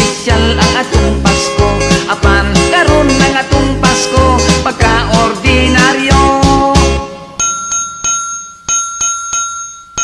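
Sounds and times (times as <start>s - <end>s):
high bell ringing: 7.3s - 10.0s.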